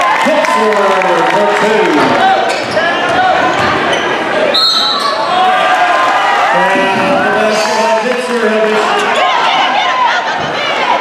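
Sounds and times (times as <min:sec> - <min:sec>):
crowd voices: 0:00.0 - 0:11.0
referee's whistle: 0:04.5 - 0:05.2.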